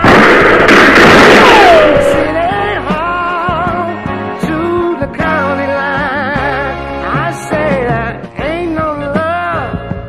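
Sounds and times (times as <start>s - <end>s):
loud burst of noise: 0.0s - 3.0s
song: 0.0s - 10.0s.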